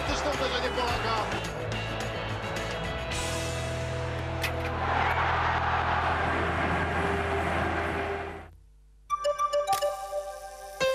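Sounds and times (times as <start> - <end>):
stadium crowd roaring: 4.6 - 8.5.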